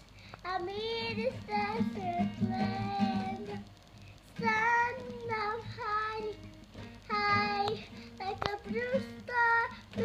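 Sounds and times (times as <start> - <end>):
child singing: 0.4 - 3.7, 4.4 - 10.0
classical guitar: 0.8 - 10.0.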